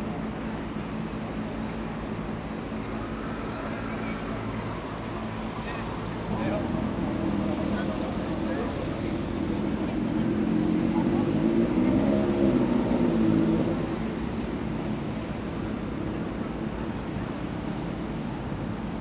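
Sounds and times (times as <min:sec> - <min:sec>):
city road noise: 0:00.0 - 0:19.0
vehicle engine passing: 0:06.3 - 0:14.3.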